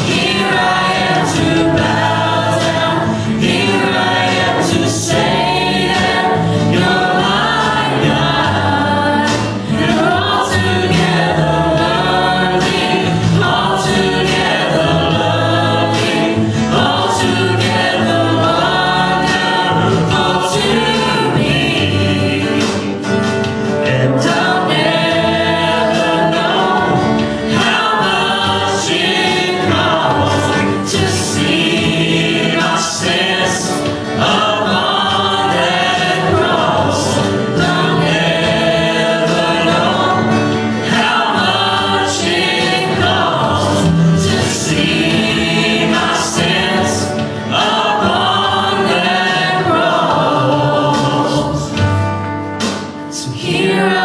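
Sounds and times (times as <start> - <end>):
guitar accompaniment: 0.0 - 54.0
men and women singing together: 0.0 - 54.0.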